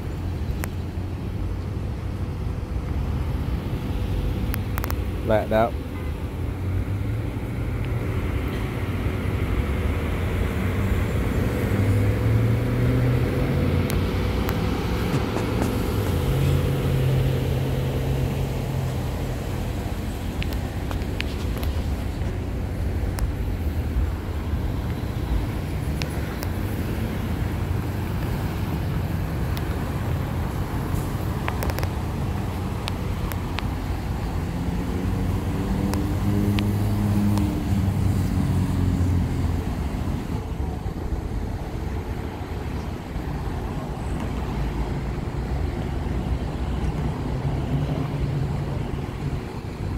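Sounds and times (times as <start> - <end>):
low engine rumble: 0.0 - 49.9
road traffic passing: 0.0 - 49.9.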